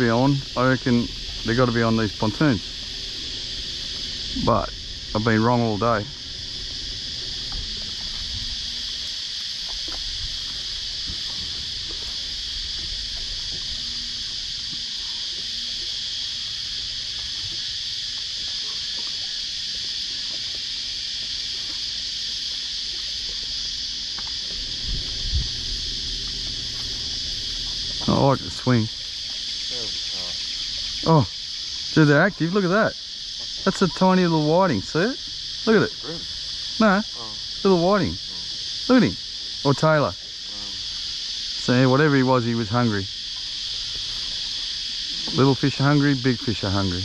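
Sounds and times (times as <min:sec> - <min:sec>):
insect chorus buzzing: 0:00.0 - 0:47.0.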